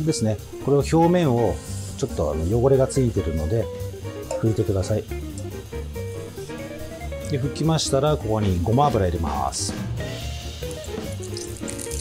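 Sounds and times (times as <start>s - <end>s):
background music with bass line: 0.0s - 12.0s
oil hissing in frying pan: 0.4s - 7.2s, 10.1s - 12.0s.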